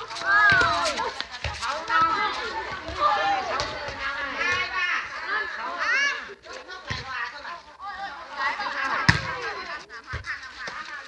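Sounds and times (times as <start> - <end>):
high-pitched voices chattering: 0.0 - 11.0.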